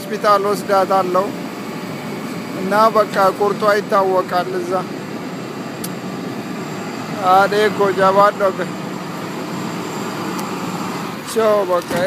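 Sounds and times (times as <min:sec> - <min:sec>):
vehicle rumble and hiss: 0:00.0 - 0:12.0.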